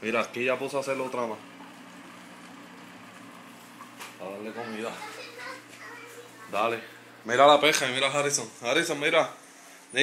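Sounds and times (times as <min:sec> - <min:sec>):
aquarium air pump humming: 0:00.0 - 0:10.0.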